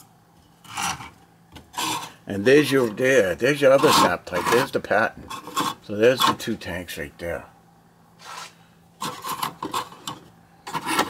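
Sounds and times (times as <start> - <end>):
plastic models scraping on shelf: 0.6 - 2.2, 3.7 - 6.4, 8.2 - 11.0.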